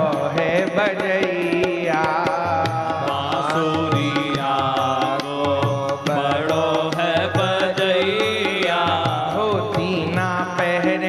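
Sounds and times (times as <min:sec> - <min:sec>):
devotional song melody: 0:00.0 - 0:11.0
quick percussion beat: 0:00.0 - 0:11.0.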